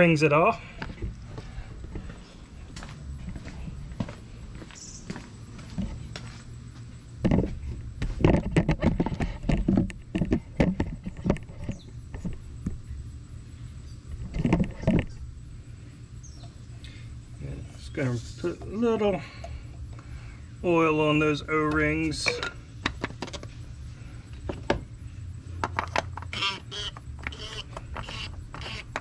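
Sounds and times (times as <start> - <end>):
steady low hum: 0.0 - 29.0
footsteps: 0.5 - 9.8
knocks of parts being handled: 25.6 - 26.3.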